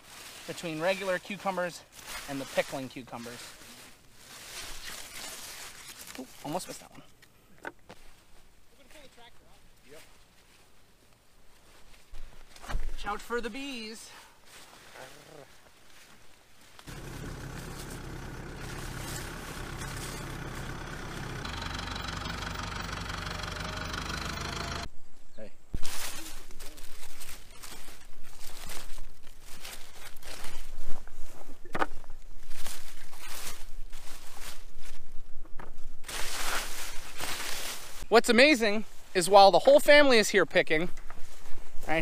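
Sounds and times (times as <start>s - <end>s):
vines and leaves rustling: 0.0s - 7.1s, 7.9s - 24.8s, 25.8s - 39.4s
tractor diesel engine idling: 16.9s - 24.9s.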